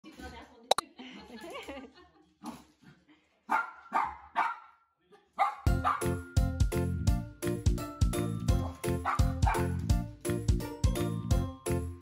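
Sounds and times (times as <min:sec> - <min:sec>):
dog barking: 0:03.5 - 0:04.8, 0:05.4 - 0:06.1, 0:08.6 - 0:09.8
music: 0:05.7 - 0:12.0.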